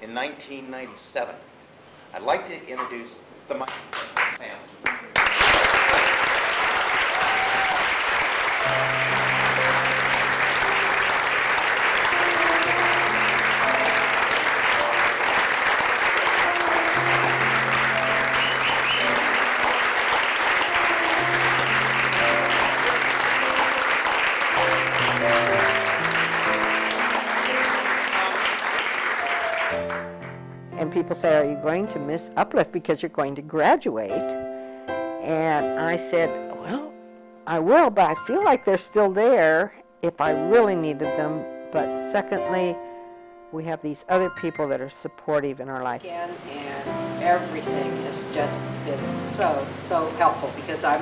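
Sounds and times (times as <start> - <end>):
audience applauding: 3.9 - 30.4.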